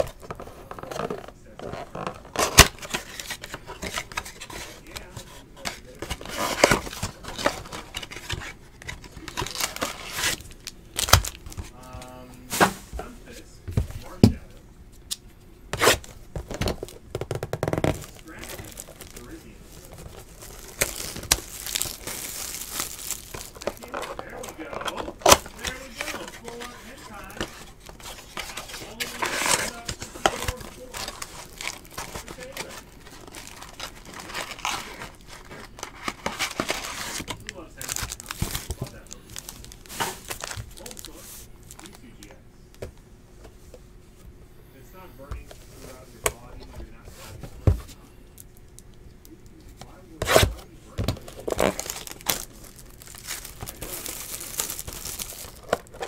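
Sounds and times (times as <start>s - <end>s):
wrapping crinkling: 0.0s - 12.1s, 15.8s - 42.2s, 50.1s - 56.0s
cardboard box tearing: 15.8s - 41.2s, 51.3s - 56.0s.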